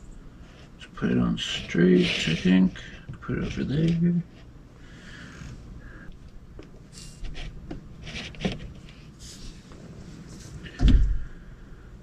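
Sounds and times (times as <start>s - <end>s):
loud deep thump: 10.8s - 11.2s.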